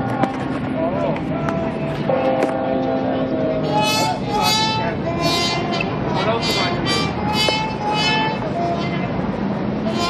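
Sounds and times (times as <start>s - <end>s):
music over outdoor loudspeakers: 0.0s - 10.0s
people's voices: 0.0s - 10.0s.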